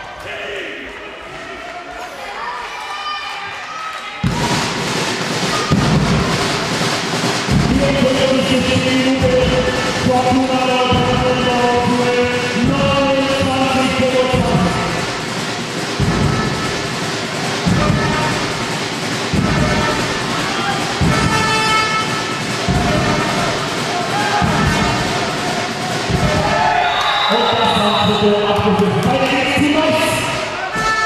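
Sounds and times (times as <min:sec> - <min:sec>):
crowd noise: 0:00.0 - 0:31.0.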